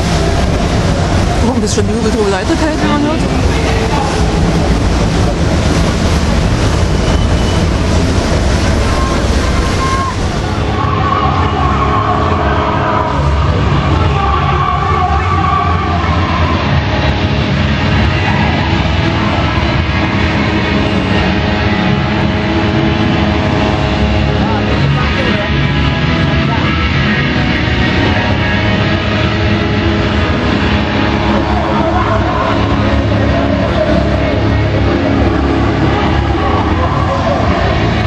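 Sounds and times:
music with long held tones: 0.0s - 38.0s
din of voices: 1.4s - 5.6s.

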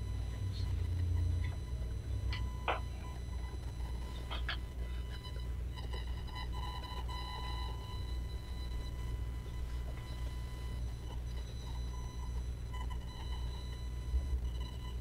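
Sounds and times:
faint steady tone: 0.0s - 15.0s
low room hum: 0.0s - 15.0s.

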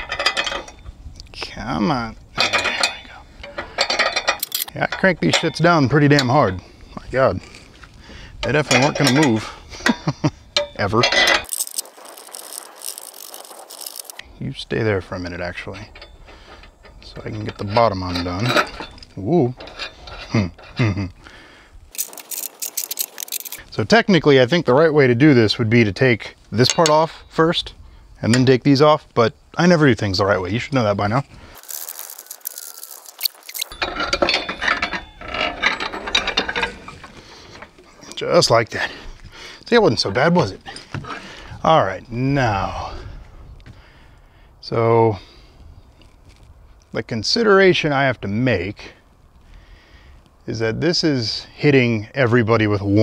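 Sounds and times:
metal hardware rattling: 0.0s - 0.9s, 2.1s - 7.6s, 8.3s - 14.3s, 15.2s - 21.2s, 21.9s - 23.6s, 26.6s - 27.2s, 31.5s - 38.8s
ratchet wrench clicking: 4.0s - 4.7s, 11.4s - 14.2s, 21.9s - 23.6s, 31.6s - 33.8s
socket ratchet clicking: 4.3s - 4.7s.

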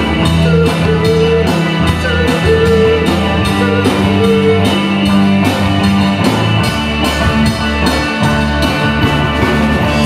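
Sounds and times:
bass guitar: 0.0s - 10.0s
electric guitars holding chords: 0.0s - 10.0s
drum kit hits: 1.9s - 10.0s.

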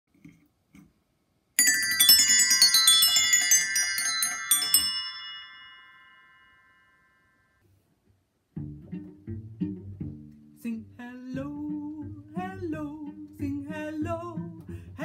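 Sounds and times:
bells ringing in a fast run: 1.6s - 7.1s.

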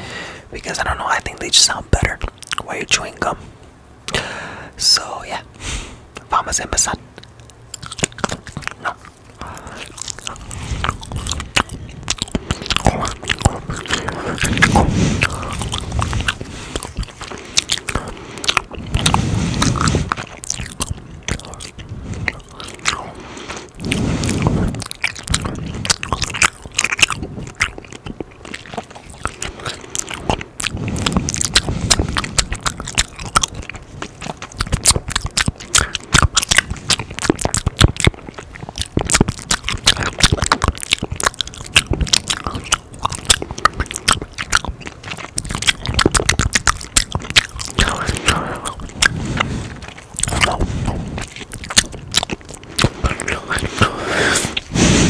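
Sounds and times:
gum chewing: 0.0s - 3.4s, 6.1s - 55.0s.

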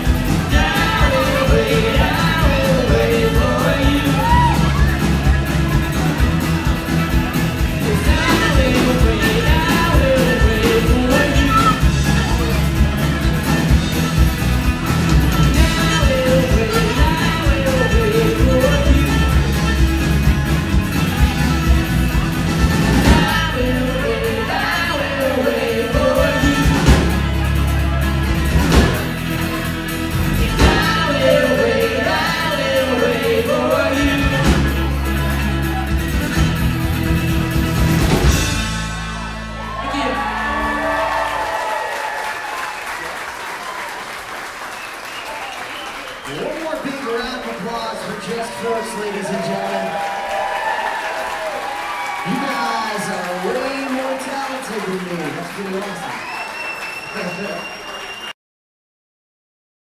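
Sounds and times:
lead and group vocals: 0.0s - 4.8s, 7.8s - 12.7s, 22.9s - 27.2s, 30.2s - 34.8s
live folk-rock band: 0.0s - 58.3s
audience applause and cheering: 0.0s - 58.4s.

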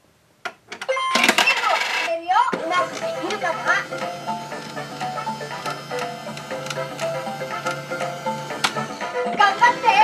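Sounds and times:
toy speaker voice with music: 0.9s - 10.0s
small toy clicks: 2.8s - 8.0s.

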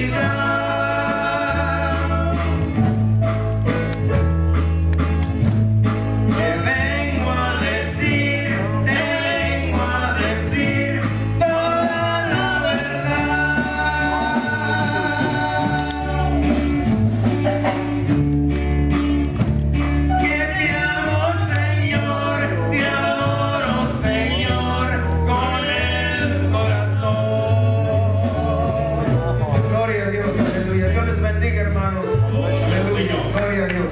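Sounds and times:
men singing into microphones: 0.0s - 3.0s, 6.3s - 17.0s, 20.1s - 31.2s
drum kit steady beat: 0.0s - 33.9s
electric bass and guitar: 0.0s - 33.9s
praise band playing gospel music: 0.0s - 33.9s.

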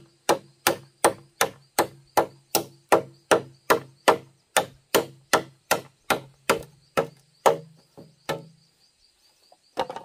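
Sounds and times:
blade chopping bamboo: 0.0s - 8.5s.

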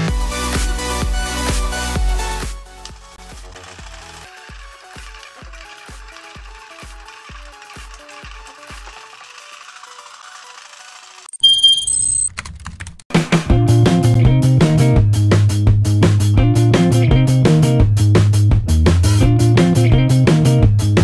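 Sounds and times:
small motor saw rattling: 2.8s - 11.4s.

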